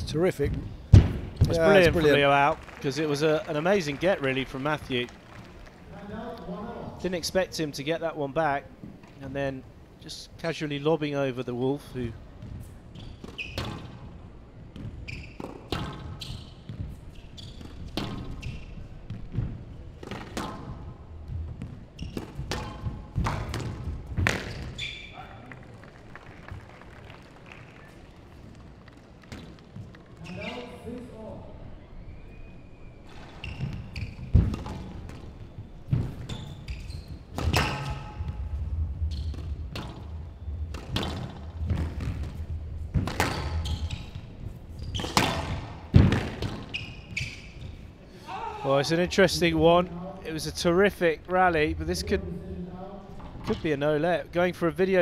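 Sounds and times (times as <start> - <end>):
squash ball hitting rackets and walls: 0.5 - 1.5, 12.4 - 25.2, 33.1 - 47.9.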